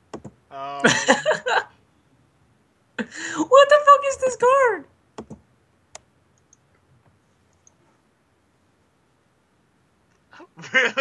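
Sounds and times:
computer mouse clicks: 0:05.2 - 0:06.8, 0:07.5 - 0:07.8.

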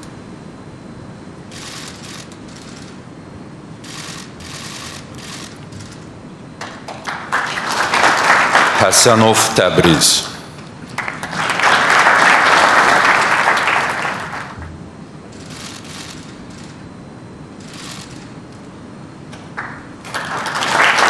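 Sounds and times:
audience applauding: 0:06.6 - 0:14.6, 0:19.6 - 0:21.0.

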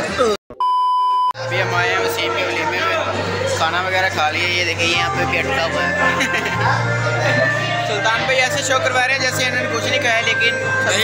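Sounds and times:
censor beep: 0:00.6 - 0:01.4.

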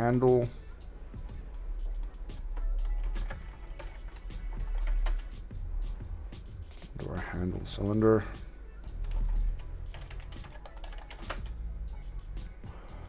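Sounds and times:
quiet background music: 0:00.0 - 0:13.0
steady low hum: 0:00.0 - 0:13.0
keyboard typing: 0:01.5 - 0:05.4, 0:08.9 - 0:12.4.

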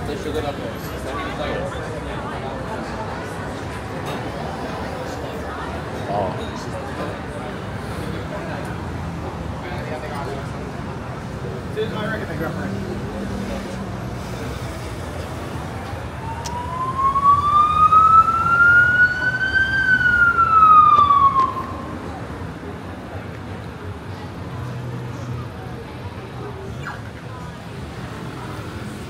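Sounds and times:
street traffic: 0:00.0 - 0:29.0
emergency siren wailing: 0:15.8 - 0:22.4.

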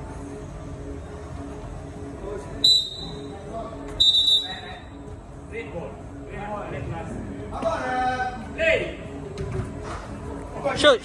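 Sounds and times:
shrill whistle blasts: 0:02.6 - 0:03.3, 0:04.0 - 0:04.7.

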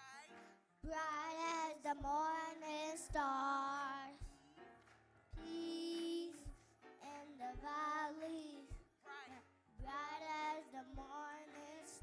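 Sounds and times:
music with low beat: 0:00.8 - 0:06.8, 0:07.5 - 0:09.0, 0:09.8 - 0:12.0
children singing into microphones: 0:05.4 - 0:08.8.

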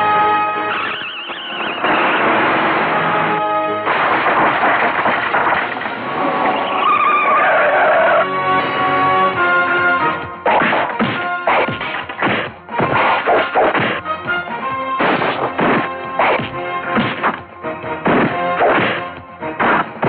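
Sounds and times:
dramatic background music: 0:00.0 - 0:20.0
loud crash: 0:00.8 - 0:07.1
punch impact effects: 0:10.5 - 0:14.0, 0:15.0 - 0:17.4, 0:18.0 - 0:20.0.

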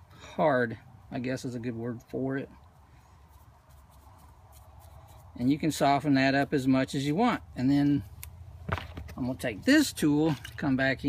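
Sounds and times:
brush scratching on putty: 0:03.2 - 0:05.8.

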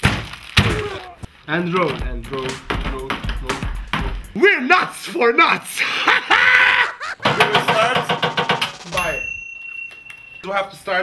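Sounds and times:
man shouting: 0:00.7 - 0:01.2
excited shouting and laughter: 0:04.4 - 0:07.2.

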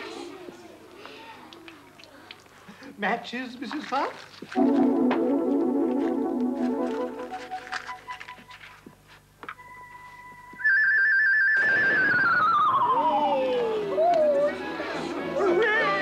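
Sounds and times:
electronic keyboard notes: 0:04.6 - 0:08.8.

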